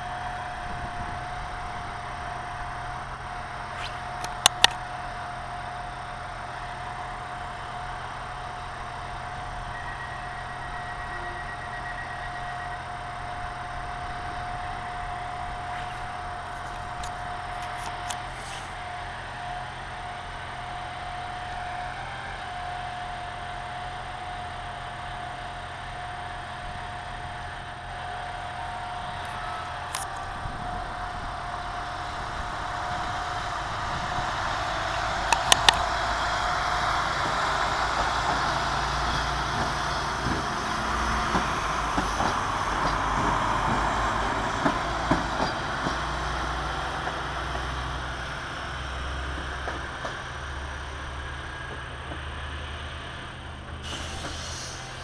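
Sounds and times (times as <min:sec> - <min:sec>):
diesel train engine: 0:00.0 - 0:55.0
sharp clicks: 0:03.8 - 0:04.8, 0:35.3 - 0:35.9.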